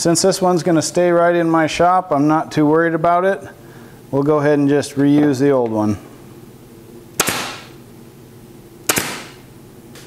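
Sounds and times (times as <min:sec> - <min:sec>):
pneumatic stapler firing: 0:07.2 - 0:07.8, 0:08.9 - 0:09.5.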